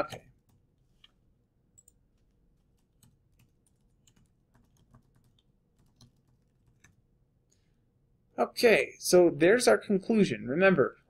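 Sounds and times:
typing on computer keyboard: 1.8s - 7.0s.

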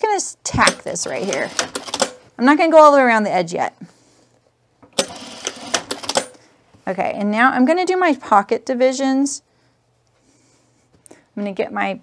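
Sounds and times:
sewing machine running: 1.0s - 2.2s, 5.0s - 6.4s.

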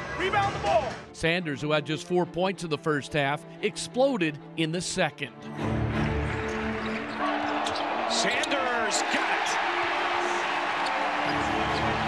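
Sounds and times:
background music: 0.0s - 12.0s
arena crowd din: 6.0s - 12.0s.

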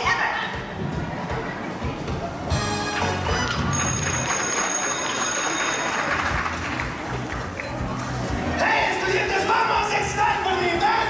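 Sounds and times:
music over stadium sound system: 0.0s - 11.0s.

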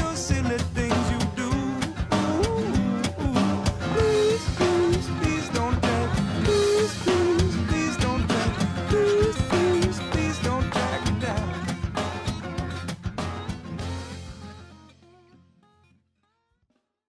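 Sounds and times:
drum kit beat: 0.0s - 14.6s
electric guitar: 0.0s - 15.3s.

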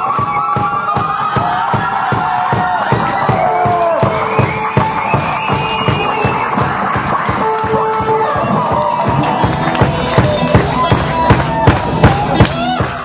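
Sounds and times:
kick drum beat: 0.0s - 13.0s.

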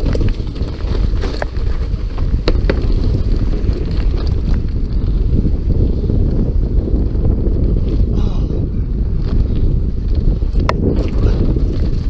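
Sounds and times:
bike tyre rumble on dirt: 0.0s - 12.0s
wind buffeting microphone: 0.0s - 12.0s.

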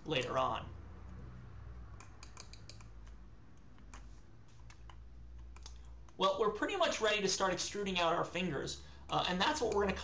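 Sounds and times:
keyboard and mouse clicking: 1.9s - 6.2s, 9.1s - 10.0s.

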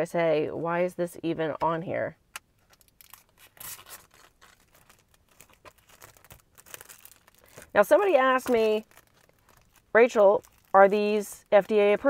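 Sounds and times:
plastic film peeling crackle: 2.7s - 12.0s.

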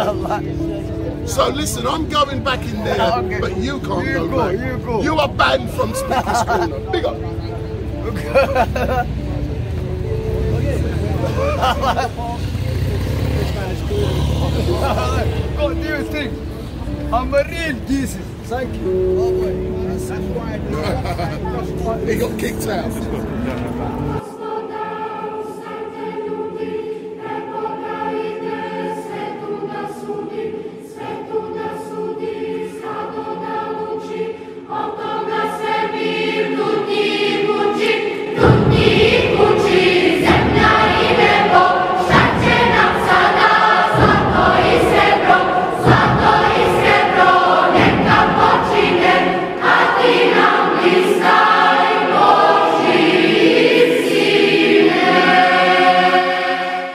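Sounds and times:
choir singing a hymn: 0.0s - 56.9s.

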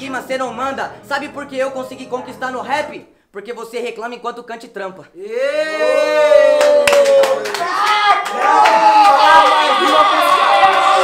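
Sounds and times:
men exclaiming and whooping: 5.2s - 11.0s
sharp hand claps and slaps: 6.6s - 10.0s.

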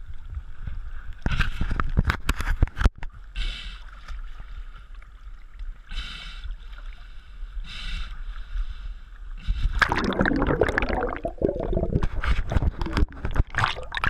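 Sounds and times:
underwater churning and bubbles: 0.0s - 14.0s
seawater sloshing around camera: 9.5s - 14.0s.

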